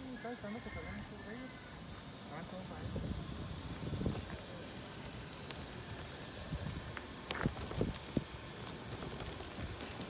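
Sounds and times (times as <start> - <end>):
crackling: 1.0 - 10.0.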